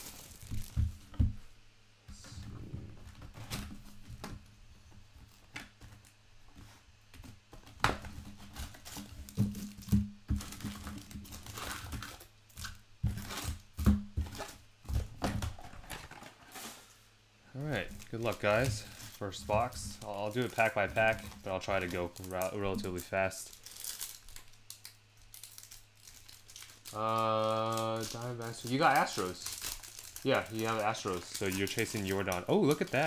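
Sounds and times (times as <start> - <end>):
foil packs crinkling and tearing: 0.0 - 1.0, 8.0 - 16.9, 17.6 - 33.0.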